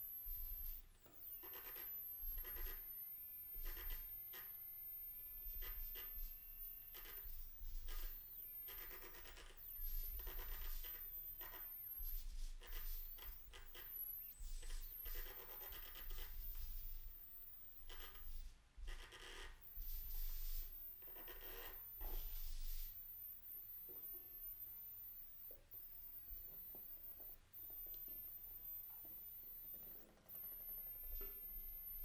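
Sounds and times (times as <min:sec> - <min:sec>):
quiet scratching and rubbing: 0:00.0 - 0:32.0.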